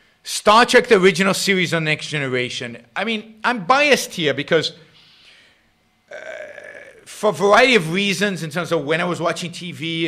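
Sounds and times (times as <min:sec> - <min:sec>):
man saying uh: 0:06.1 - 0:10.0.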